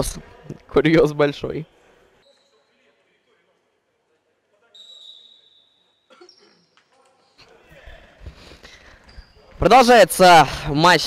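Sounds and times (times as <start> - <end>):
whistle blast: 4.8 - 6.0.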